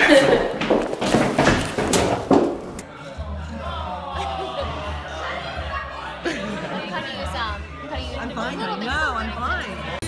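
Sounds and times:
thumps and knocks: 0:00.6 - 0:02.8
indistinct talking: 0:02.8 - 0:10.0.

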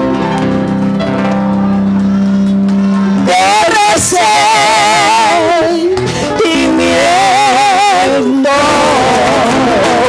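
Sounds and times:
live band holding a chord: 0:00.0 - 0:10.0.

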